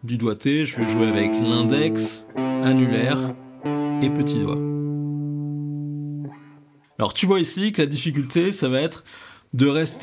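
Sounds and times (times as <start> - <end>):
electric guitar low note ringing: 0.8 - 6.7.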